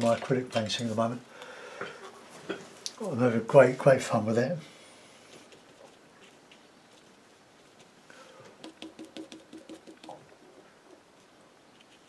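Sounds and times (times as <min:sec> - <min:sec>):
paintbrush dabbing and scrubbing: 0:08.6 - 0:10.5.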